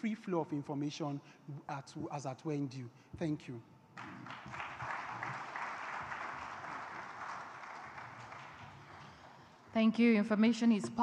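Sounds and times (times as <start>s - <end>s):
audience applauding: 4.0s - 9.6s.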